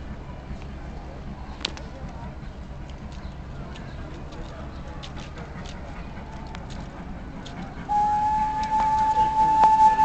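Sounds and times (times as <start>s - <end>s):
steam locomotive whistle: 7.9s - 10.0s.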